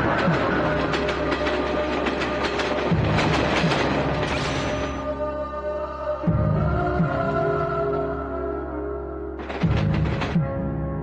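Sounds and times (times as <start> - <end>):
train wheels clattering: 0.0 - 5.1, 9.4 - 10.4
train low rumble: 0.0 - 8.1.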